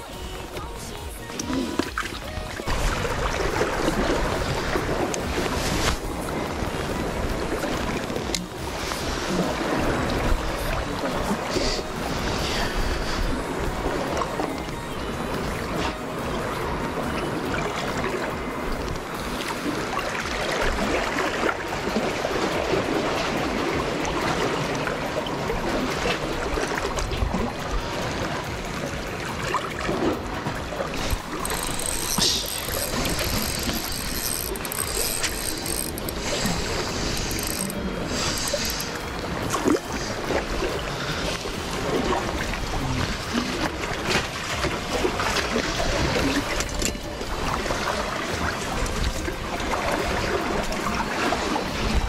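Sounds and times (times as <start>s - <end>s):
steady background noise: 0.0s - 52.0s
spinning reel gears turning: 31.0s - 39.0s.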